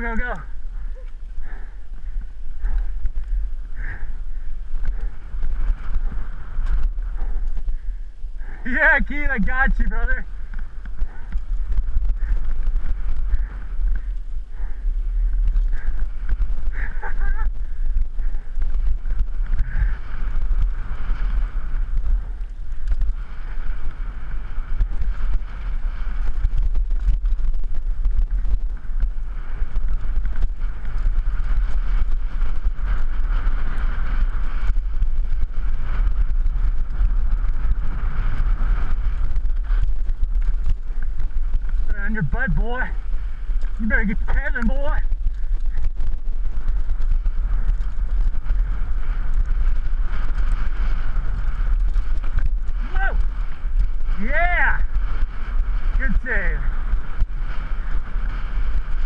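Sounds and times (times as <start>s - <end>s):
bike rattling over dirt trail: 0.0s - 59.0s
steady low rumble: 0.0s - 59.0s
wind buffeting microphone: 0.0s - 59.0s.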